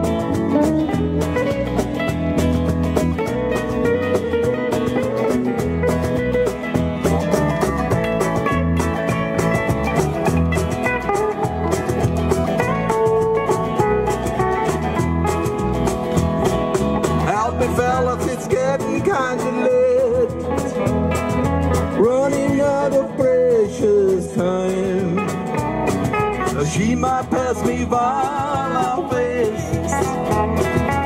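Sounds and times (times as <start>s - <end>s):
country-rock band playing: 0.0s - 31.0s
electric guitar lead with bent notes: 0.0s - 31.0s.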